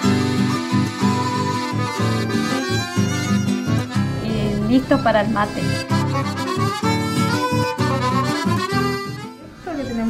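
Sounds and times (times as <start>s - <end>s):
accordion-led music: 0.0s - 10.0s.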